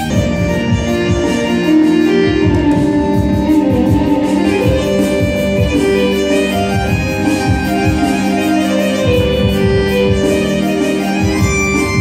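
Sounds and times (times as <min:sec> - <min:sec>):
keyboard and percussion band: 0:00.0 - 0:12.0.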